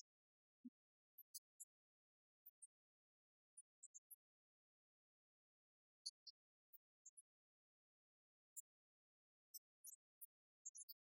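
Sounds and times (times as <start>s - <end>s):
faint high-pitched ticks: 0.0s - 11.0s.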